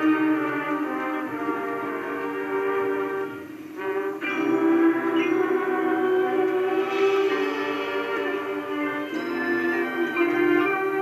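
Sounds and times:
marching band brass chord: 0:00.0 - 0:11.0.

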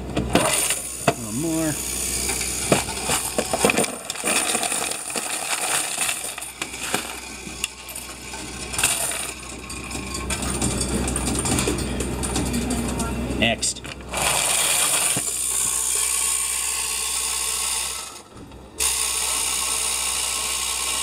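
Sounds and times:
coins clattering into a tray: 0:02.9 - 0:07.2, 0:07.9 - 0:13.0
counting machine humming: 0:06.2 - 0:21.0.

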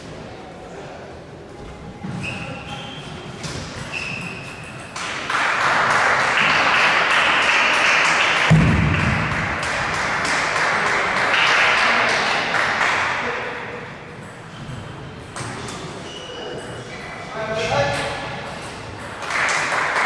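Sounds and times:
low thud: 0:08.5 - 0:09.4.

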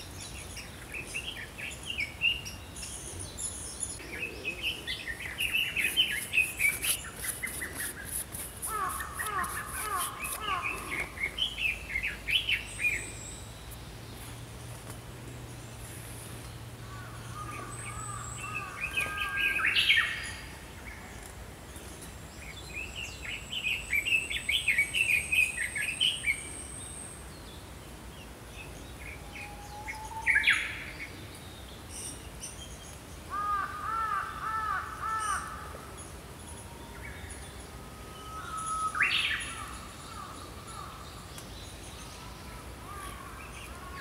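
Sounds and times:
small birds singing: 0:00.0 - 0:44.0
quick bird chirps: 0:05.3 - 0:11.4.

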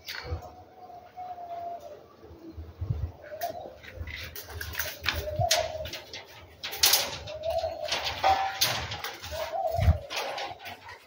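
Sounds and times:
dove cooing: 0:00.0 - 0:11.0.

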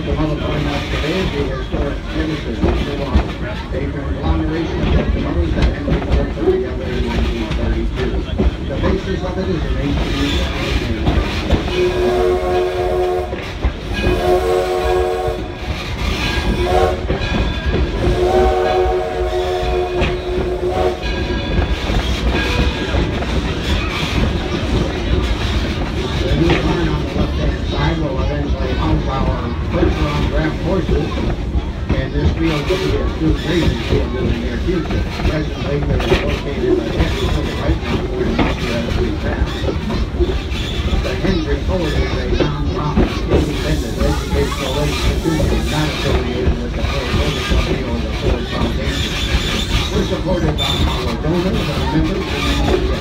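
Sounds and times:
steady din of running train: 0:00.0 - 0:53.0
train wheels clattering over rails: 0:00.0 - 0:53.0.

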